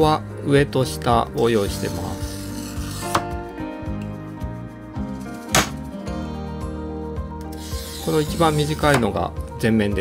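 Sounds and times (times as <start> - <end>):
background music: 0.0 - 10.0
glass cutter scoring glass: 1.6 - 3.2, 7.5 - 9.1.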